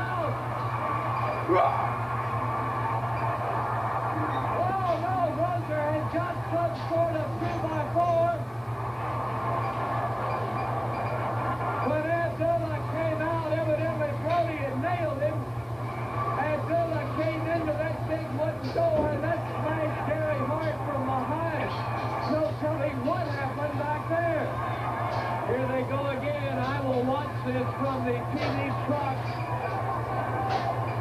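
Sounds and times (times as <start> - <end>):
indistinct voices from tv: 0.0 - 31.0
steady low hum: 0.0 - 31.0.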